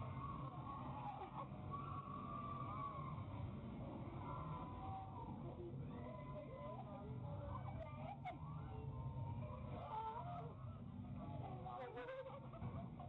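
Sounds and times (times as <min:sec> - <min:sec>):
people squealing and shrieking: 0:00.1 - 0:03.2.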